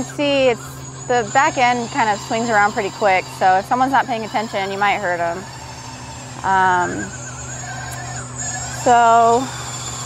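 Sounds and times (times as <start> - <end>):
electric motor hum with whine: 0.0 - 10.0
faint wavering tone: 0.0 - 10.0.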